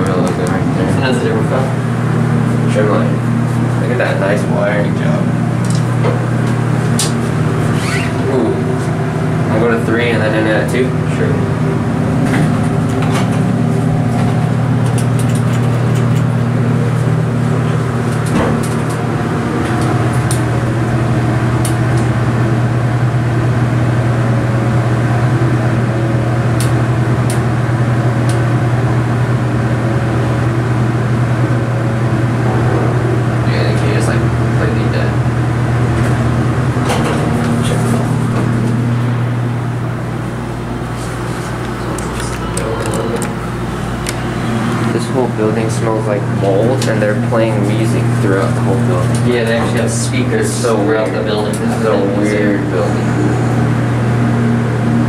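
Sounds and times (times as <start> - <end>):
elevator pump motor humming: 0.0 - 55.0.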